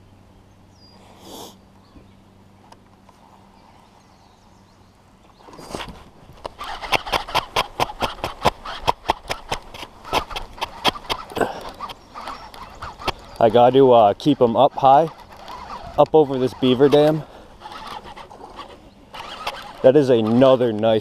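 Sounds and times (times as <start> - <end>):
fishing reel clicking: 6.5 - 21.0.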